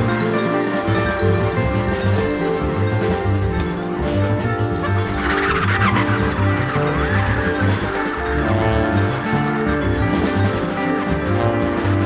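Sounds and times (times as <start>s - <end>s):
jazz group playing: 0.0s - 12.0s
horn warbling high line: 4.8s - 12.0s.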